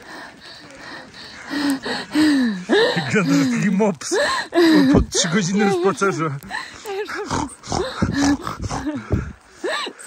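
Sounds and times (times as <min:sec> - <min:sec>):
woman breathing: 0:00.0 - 0:05.1.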